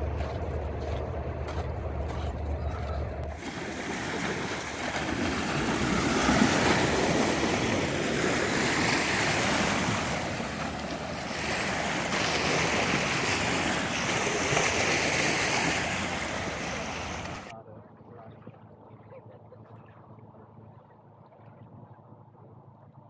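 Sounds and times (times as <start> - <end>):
loud steady rushing noise: 0.0 - 17.5.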